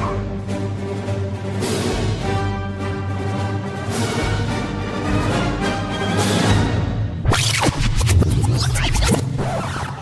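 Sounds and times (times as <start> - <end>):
sliding rubbing sound effects: 7.2 - 10.0.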